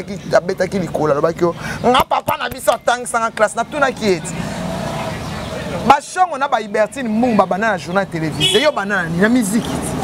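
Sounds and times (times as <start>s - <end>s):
motor vehicle running: 0.0s - 10.0s.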